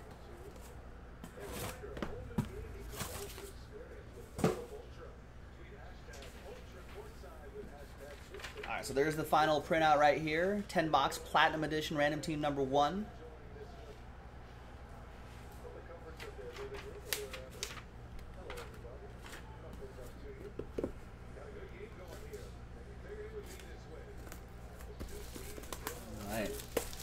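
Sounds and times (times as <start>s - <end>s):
plastic shrink wrap crinkling: 25.1s - 27.0s.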